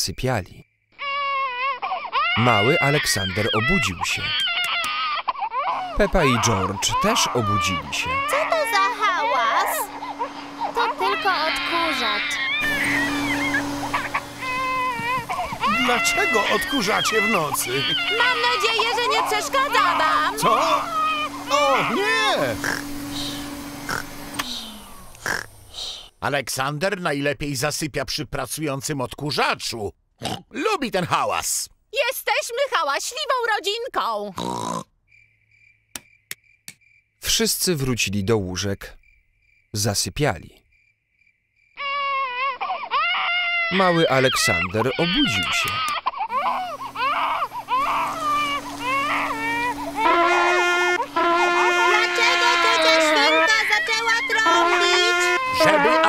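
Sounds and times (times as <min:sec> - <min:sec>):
piglet squeaks: 0:01.0 - 0:22.0, 0:41.8 - 0:50.2
cartoon baby crying: 0:01.0 - 0:22.8, 0:41.8 - 0:56.0
vacuum cleaner humming: 0:05.7 - 0:26.1, 0:43.7 - 0:56.0
trumpet blaring held notes: 0:10.8 - 0:24.0, 0:48.4 - 0:56.0.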